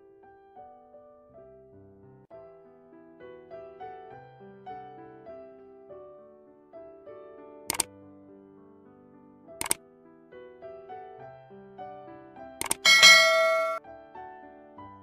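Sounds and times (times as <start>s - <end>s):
soft piano music: 0.0s - 15.0s
mouse clicks: 12.6s - 12.8s
bright bell ding: 12.8s - 13.8s.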